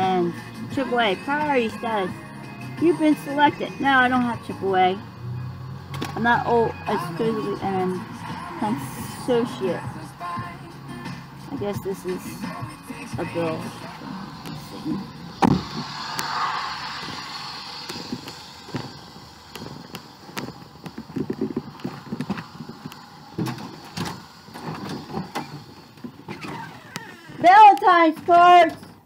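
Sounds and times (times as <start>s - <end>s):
hissing outdoor noise: 1.0s - 29.0s
footsteps: 12.1s - 29.0s
rustling and knocks of handling: 18.0s - 29.0s.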